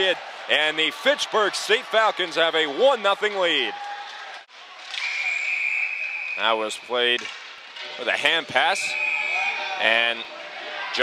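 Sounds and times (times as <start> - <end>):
arena crowd noise: 0.0 - 11.0
referee's whistle: 5.0 - 6.8, 8.8 - 9.7.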